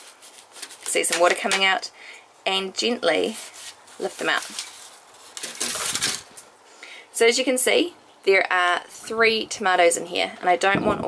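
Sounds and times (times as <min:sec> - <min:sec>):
plastic punnet crinkling: 0:00.0 - 0:01.8, 0:03.2 - 0:06.5.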